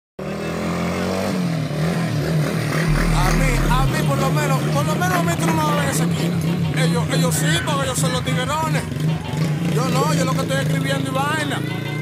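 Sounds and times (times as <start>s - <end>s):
motorcycle engine running: 2.9s - 4.0s
person speaking: 2.9s - 4.0s.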